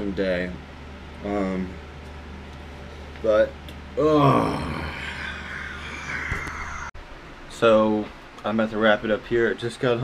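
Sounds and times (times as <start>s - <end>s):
man sighing: 4.0s - 6.9s.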